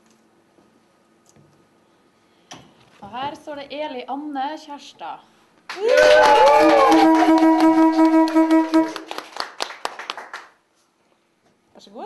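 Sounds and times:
hand clapping: 5.7s - 10.6s
loud horn-like blast: 6.6s - 9.1s.

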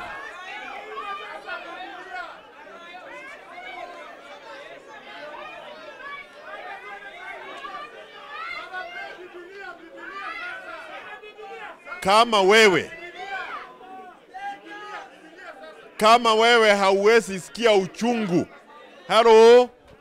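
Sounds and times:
crowd chattering: 0.0s - 20.0s.

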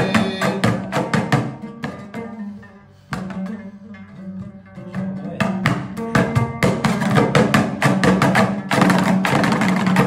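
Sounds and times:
lute strummed hard: 0.0s - 10.0s.

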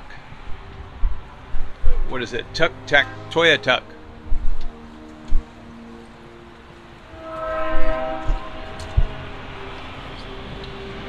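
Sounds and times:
horn holding a chord: 1.3s - 11.0s.

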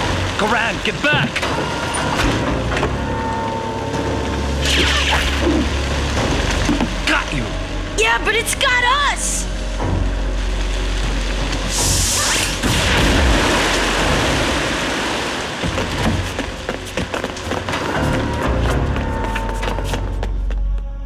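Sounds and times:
dramatic music: 0.0s - 21.0s.

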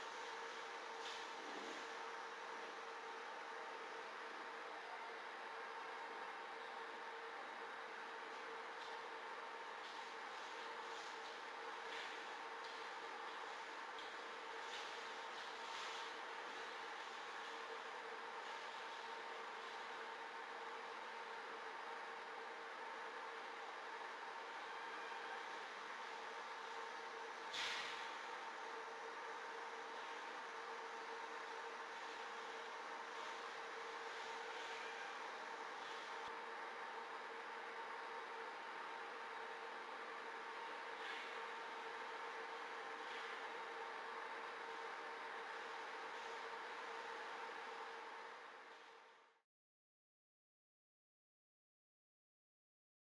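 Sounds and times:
steady hiss: 27.4s - 28.5s.

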